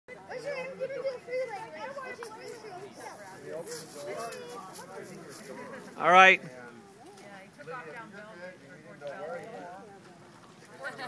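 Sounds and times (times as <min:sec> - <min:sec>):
children calling out and chattering: 0:00.1 - 0:08.6.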